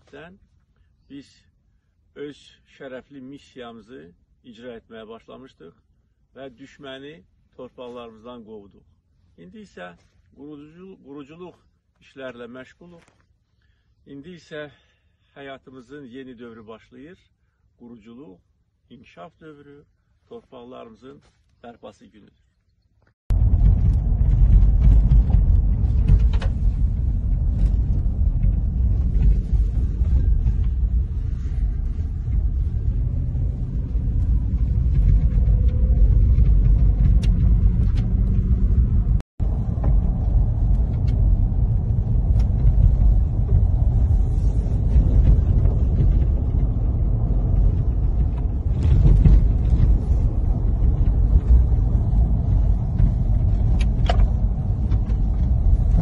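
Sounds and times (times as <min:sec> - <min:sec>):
car driving on rough road: 0:23.3 - 0:56.0.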